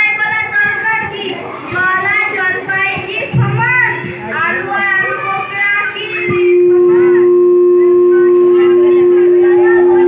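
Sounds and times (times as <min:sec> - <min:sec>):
microphone feedback howl: 0:06.3 - 0:10.0.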